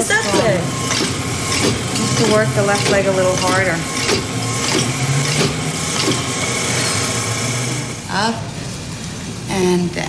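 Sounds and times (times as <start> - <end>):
exercise machine whirring: 0.0 - 9.5
machine clicks: 0.8 - 6.3.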